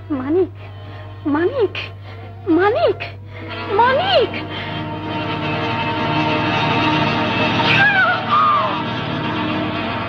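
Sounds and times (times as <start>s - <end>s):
short wailing cries: 7.7s - 8.9s.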